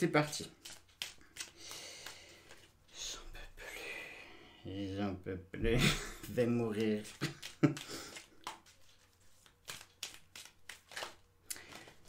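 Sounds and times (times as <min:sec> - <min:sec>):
cards being shuffled: 0:00.1 - 0:03.0, 0:06.2 - 0:12.0.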